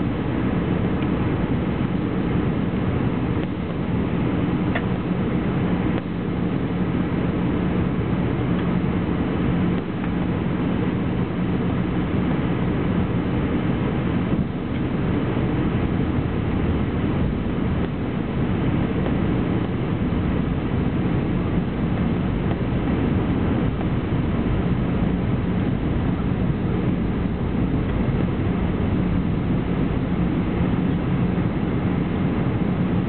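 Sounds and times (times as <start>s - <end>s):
airplane cabin engine noise: 0.0s - 33.0s
constant low hum: 0.0s - 33.0s.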